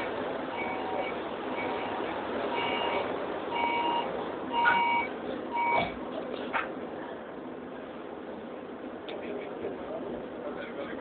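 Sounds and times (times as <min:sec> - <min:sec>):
train noise: 0:00.0 - 0:11.0
electronic door warning beep: 0:00.6 - 0:02.0, 0:02.6 - 0:06.0.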